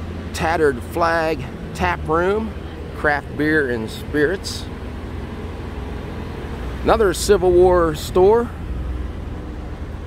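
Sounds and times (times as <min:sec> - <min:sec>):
street background rumble: 0:00.0 - 0:10.0.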